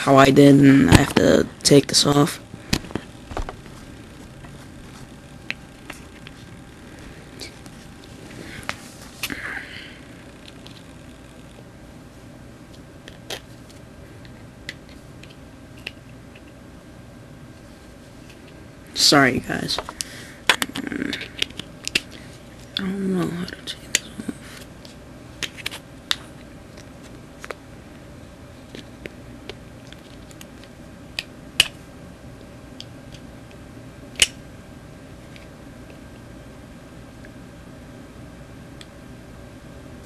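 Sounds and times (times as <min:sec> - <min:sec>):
low room hum: 0:00.0 - 0:40.0.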